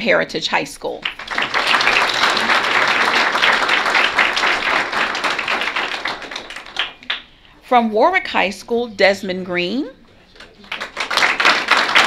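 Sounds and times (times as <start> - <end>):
audience applauding: 1.0 - 7.3, 10.4 - 12.0.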